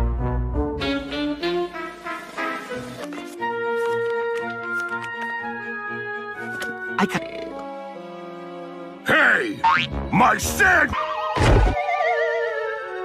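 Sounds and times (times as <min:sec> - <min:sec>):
score music: 0:00.0 - 0:03.0.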